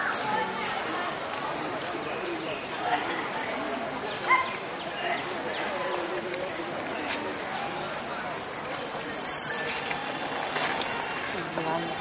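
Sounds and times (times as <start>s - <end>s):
murmur of voices: 0.0s - 12.0s
birds chirping: 9.2s - 12.0s.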